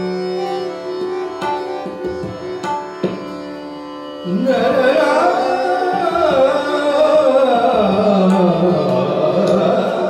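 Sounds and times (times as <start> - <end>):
tanpura drone: 0.0 - 10.0
man singing ornamented melody: 4.2 - 10.0.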